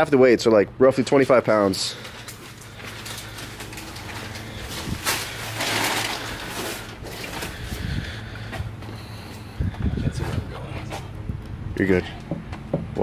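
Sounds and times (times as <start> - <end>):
steady low hum: 0.0 - 13.0
plastic wrapping rustling: 1.6 - 8.5.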